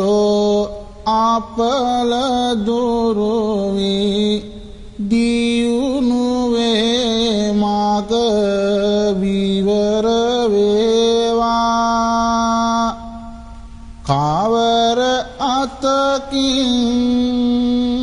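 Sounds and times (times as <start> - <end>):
person chanting verse: 0.0 - 13.4, 14.0 - 18.0.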